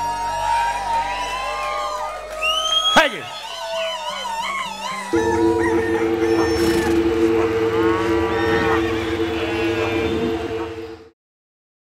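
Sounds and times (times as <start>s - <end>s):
loud low hum: 4.7s - 11.2s.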